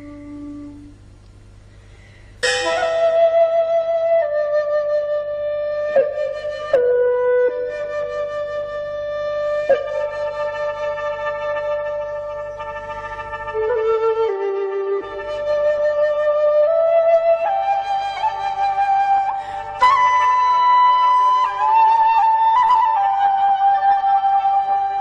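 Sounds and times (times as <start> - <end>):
solo flute long notes: 0.0 - 1.1, 2.4 - 25.0.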